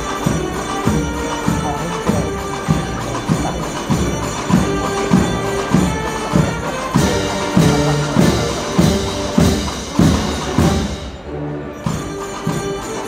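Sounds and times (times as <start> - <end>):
band playing slow march: 0.0 - 13.0
steady drum beat: 0.0 - 13.0.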